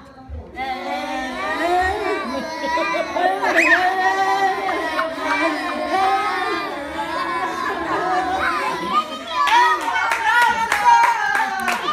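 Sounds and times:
children's voices: 0:00.0 - 0:11.9
hand clapping: 0:09.8 - 0:11.9.

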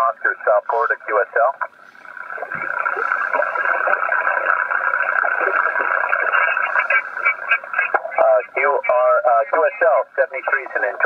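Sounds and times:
radio static and band noise: 0:00.0 - 0:11.0
faint voice over radio: 0:05.4 - 0:11.0.

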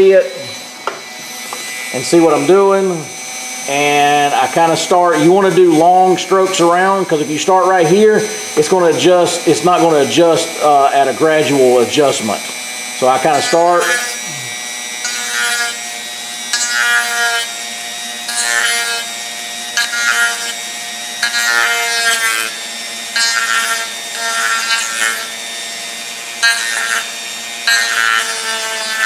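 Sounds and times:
rotary tool grinding plastic: 0:00.0 - 0:29.0
rotary tool motor whine: 0:00.0 - 0:29.0.

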